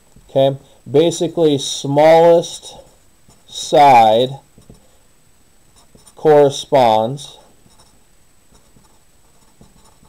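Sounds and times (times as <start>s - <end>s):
marker scratching on paper: 4.6s - 4.9s, 5.8s - 6.3s, 7.6s - 10.0s.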